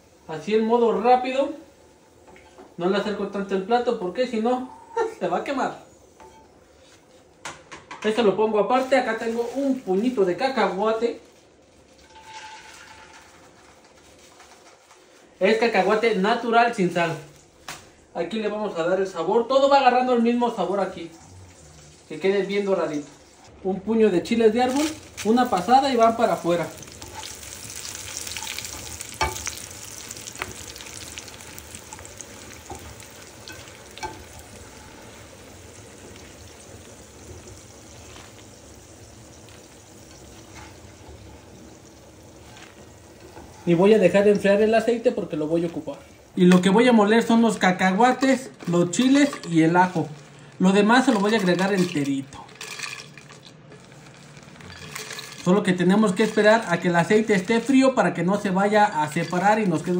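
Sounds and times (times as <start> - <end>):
peanuts sizzling in hot oil: 0.0 - 5.0, 8.5 - 17.6, 20.5 - 59.9.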